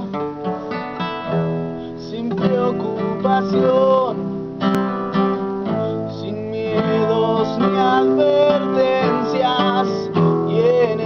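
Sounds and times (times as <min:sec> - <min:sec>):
classical guitar plucked chords: 0:00.0 - 0:11.0.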